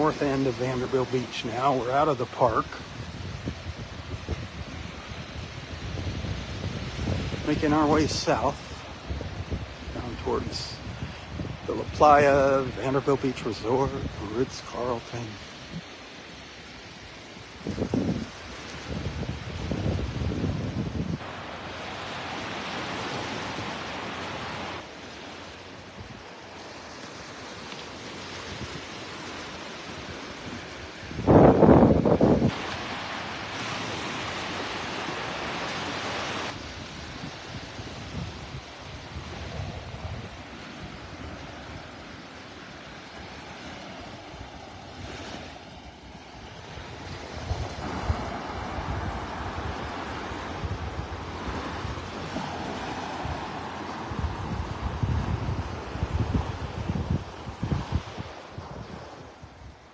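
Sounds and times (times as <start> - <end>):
small surf breaking on beach: 0.0 - 59.9
wind buffeting microphone: 2.4 - 12.7, 17.5 - 24.6, 30.0 - 35.5, 36.4 - 42.1, 43.5 - 59.9.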